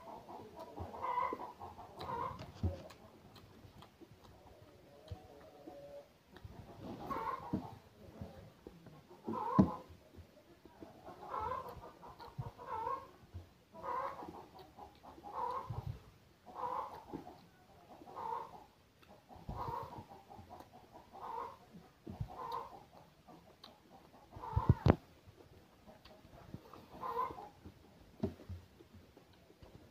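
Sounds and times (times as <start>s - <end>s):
man chewing with wet mouth sounds: 0.1s - 29.9s.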